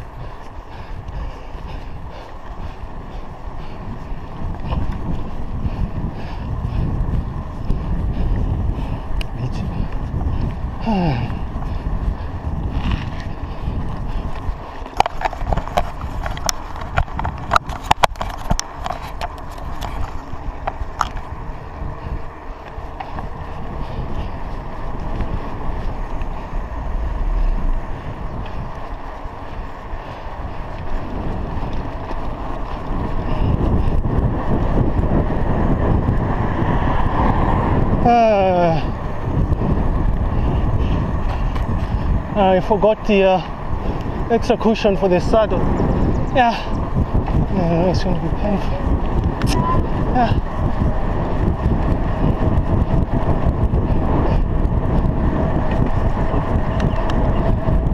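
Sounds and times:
wind and road noise: 0:00.0 - 0:57.9
sharp clicks and rattles: 0:00.1 - 0:36.4.

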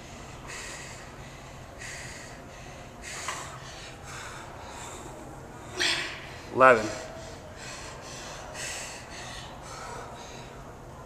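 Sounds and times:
woman breathing hard: 0:00.0 - 0:10.8.

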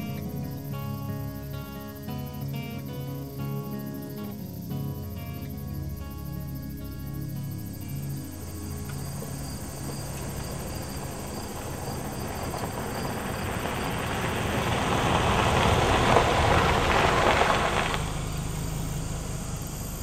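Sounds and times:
truck passing on gravel: 0:00.0 - 0:04.8, 0:05.8 - 0:20.0
insects chirping: 0:00.0 - 0:20.0.

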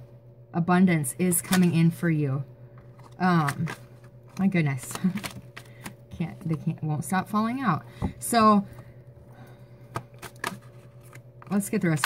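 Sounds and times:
cards being shuffled: 0:02.8 - 0:06.6, 0:09.9 - 0:12.0.

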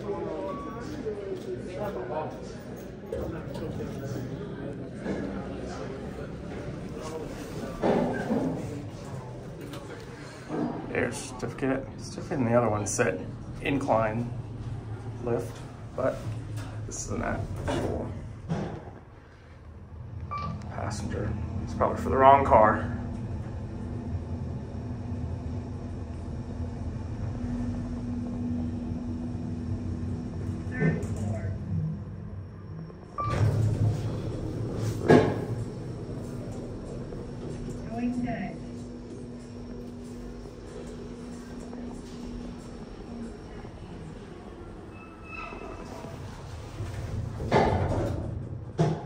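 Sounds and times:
elevator running: 0:00.0 - 0:49.0.

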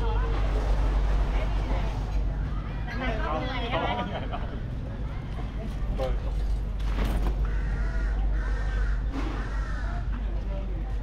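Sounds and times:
crow cawing: 0:07.4 - 0:10.2.

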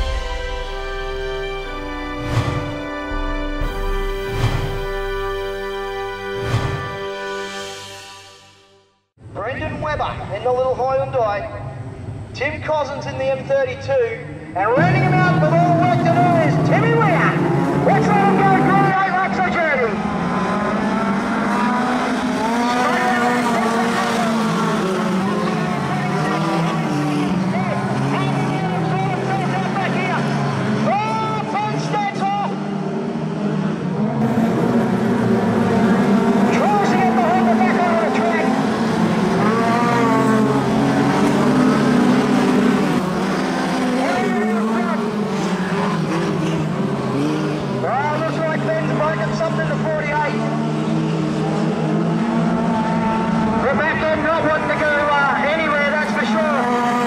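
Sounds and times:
race car engines: 0:09.2 - 0:57.0.

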